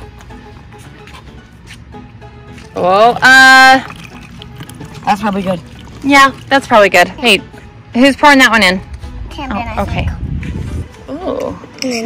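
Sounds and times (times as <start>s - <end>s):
liquid trickling through funnel: 2.8s - 7.6s.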